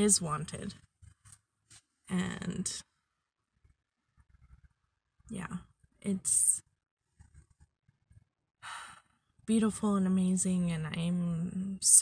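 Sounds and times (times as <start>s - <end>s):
woman speaking: 0.0s - 0.7s, 2.1s - 2.8s, 5.3s - 6.6s, 9.5s - 12.0s.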